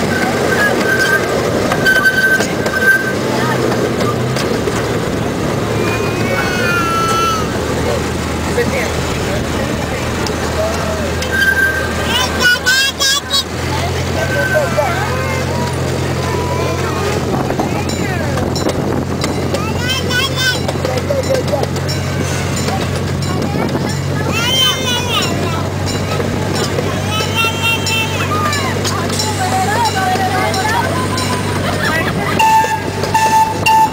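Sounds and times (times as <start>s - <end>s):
locomotive engine humming: 0.0s - 33.9s.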